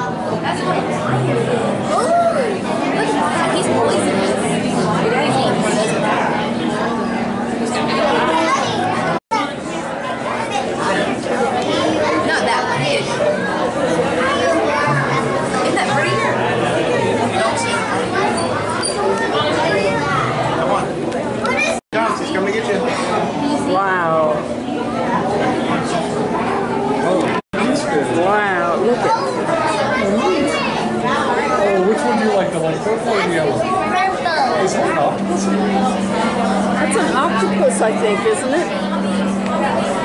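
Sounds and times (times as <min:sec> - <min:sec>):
chatter of many people: 0:00.0 - 0:40.0.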